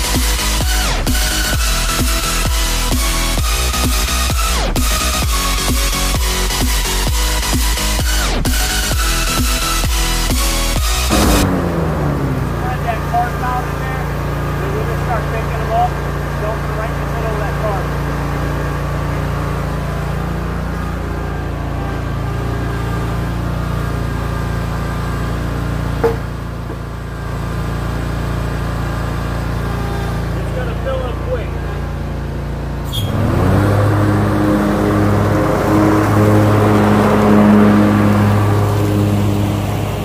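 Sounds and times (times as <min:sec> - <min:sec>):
mower engine running and revving: 0:00.0 - 0:40.0
rushing noise: 0:10.8 - 0:13.9.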